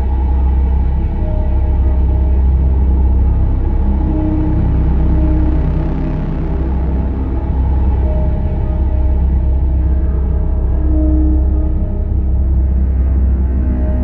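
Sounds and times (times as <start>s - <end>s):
dark droning music: 0.0s - 14.0s.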